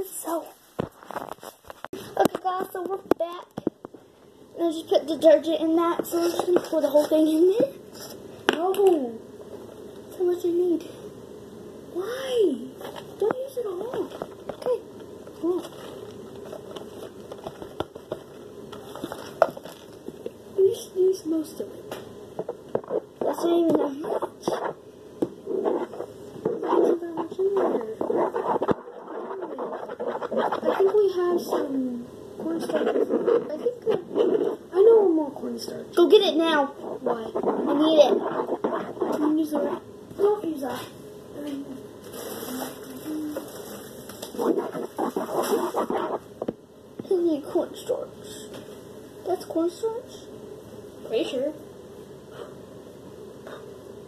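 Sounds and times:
steady low hum: 0:00.0 - 0:54.0
stirring and scraping strokes: 0:04.8 - 0:08.3, 0:21.3 - 0:41.0, 0:42.0 - 0:46.6
wet slime being stirred: 0:22.4 - 0:24.8, 0:25.4 - 0:35.0, 0:36.0 - 0:40.4, 0:42.1 - 0:46.4.

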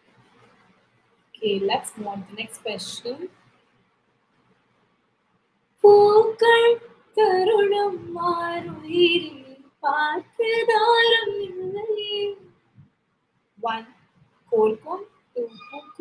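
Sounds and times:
woman singing unaccompanied: 0:05.8 - 0:12.6, 0:13.6 - 0:13.9, 0:14.5 - 0:16.0.

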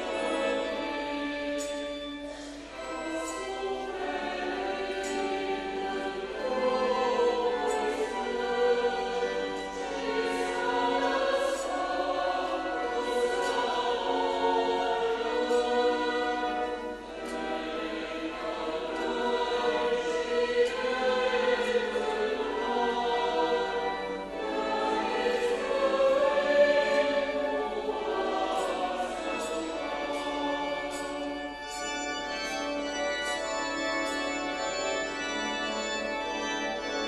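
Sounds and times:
choir singing a hymn: 0:00.0 - 0:37.0
singers breathing: 0:02.3 - 0:02.7.

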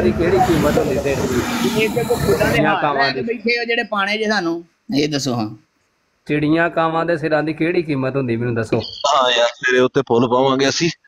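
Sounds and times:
person talking: 0:08.7 - 0:11.0.

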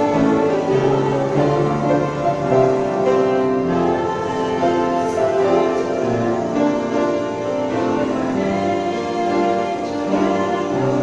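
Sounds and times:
vocal group singing in harmony: 0:00.0 - 0:11.0.

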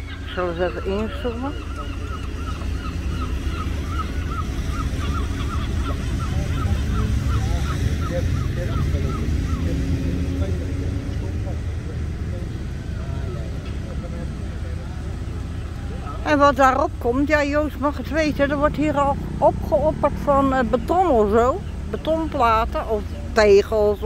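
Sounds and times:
bird calling rapidly: 0:00.0 - 0:10.4, 0:15.6 - 0:24.0.

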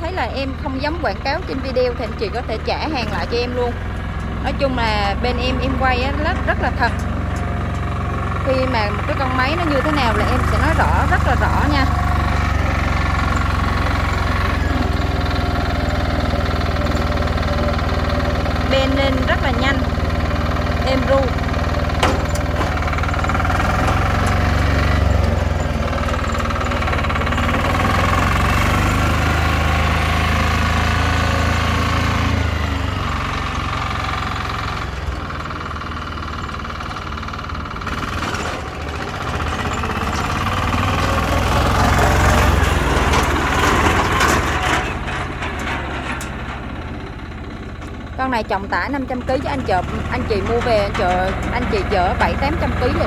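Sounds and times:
diesel engine running: 0:00.0 - 0:53.0.

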